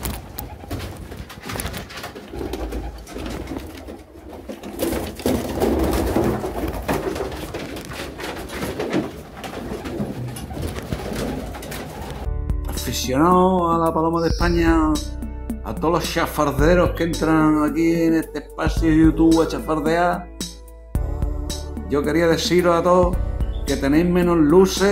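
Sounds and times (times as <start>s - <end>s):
pigeons cooing: 2.1s - 12.3s.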